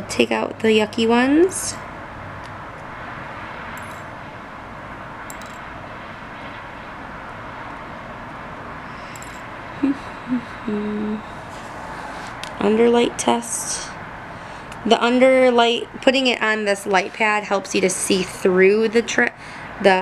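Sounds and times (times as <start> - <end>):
woman humming: 9.8 - 11.3.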